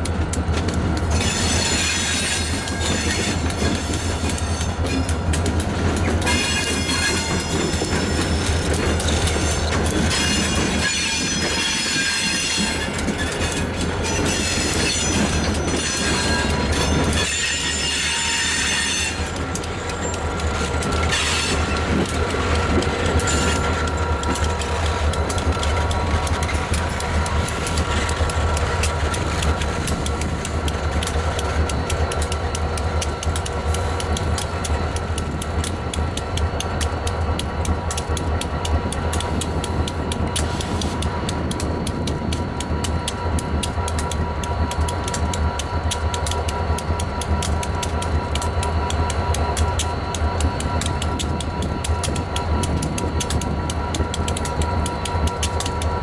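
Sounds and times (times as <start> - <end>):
diesel locomotive engine drone: 0.0 - 56.0
rolling train wheels: 0.0 - 56.0
wheels squealing on rails: 0.9 - 56.0.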